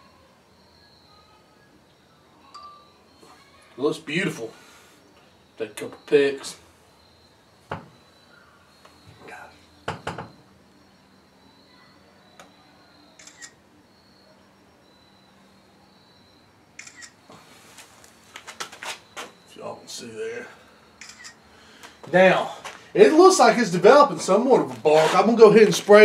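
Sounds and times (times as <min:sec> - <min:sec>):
phone camera shutter clicks: 0:13.2 - 0:13.6, 0:16.8 - 0:17.2, 0:21.0 - 0:21.4.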